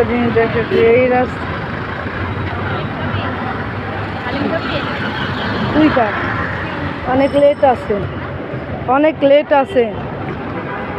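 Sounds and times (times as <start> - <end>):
busy road traffic: 0.0 - 10.9.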